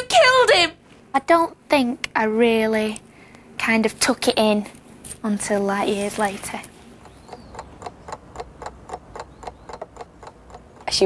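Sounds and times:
rapid ticking: 7.0 - 11.0.

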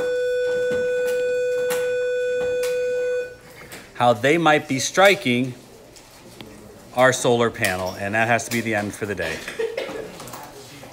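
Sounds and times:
electronic school bell tone: 0.0 - 3.5.

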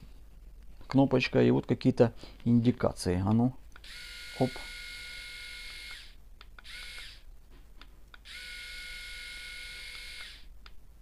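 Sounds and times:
electric shaver motor whine: 3.8 - 7.2, 8.2 - 10.5.

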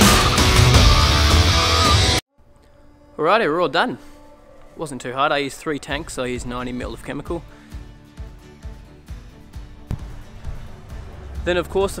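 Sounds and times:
music with held chords and beat: 0.0 - 2.2.

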